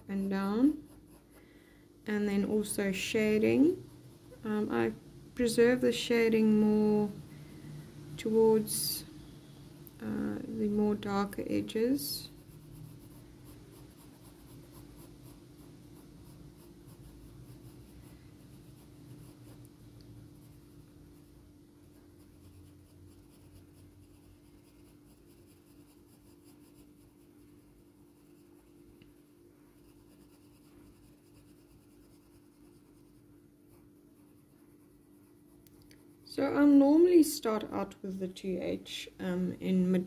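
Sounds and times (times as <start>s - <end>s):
pencil scratching on paper: 0.0s - 1.4s, 10.8s - 19.7s, 20.4s - 36.6s
steady low hum: 0.0s - 40.0s.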